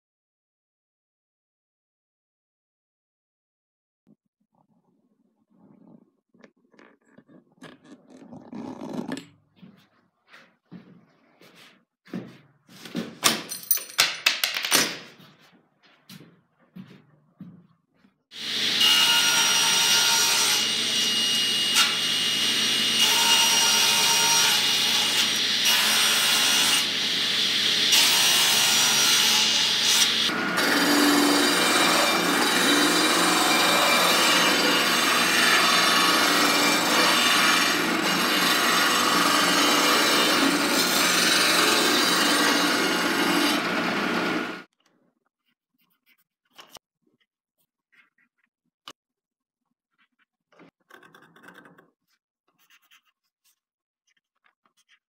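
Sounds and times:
disc sander grinding wood: 18.4 - 18.8, 20.6 - 25.6, 26.4 - 44.7.

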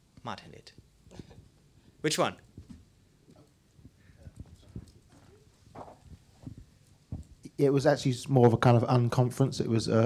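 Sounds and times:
microphone handling knocks: 3.8 - 7.4.

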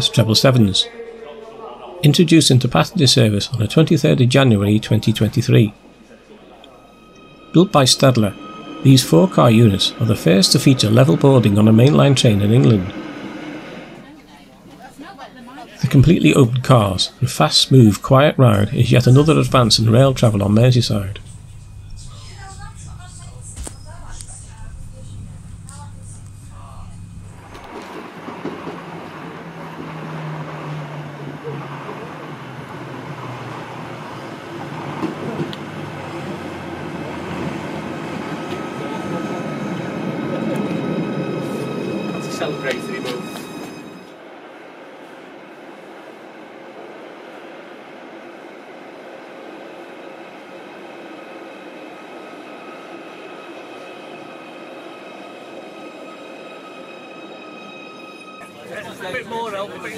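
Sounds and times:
electric train running in: 0.0 - 59.9
steady train hum: 0.0 - 59.9
thin high tones: 5.0 - 14.1
train clicks: 27.4 - 38.8.

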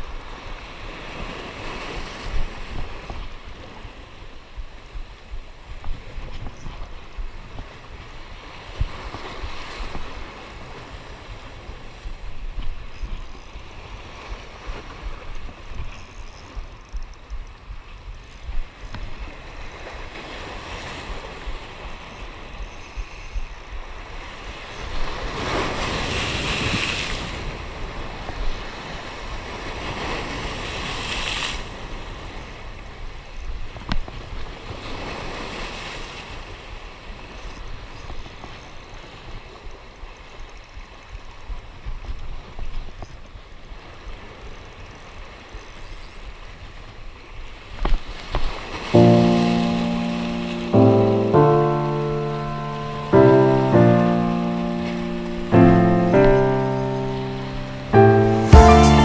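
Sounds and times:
sustained music chords: 49.0 - 59.0.

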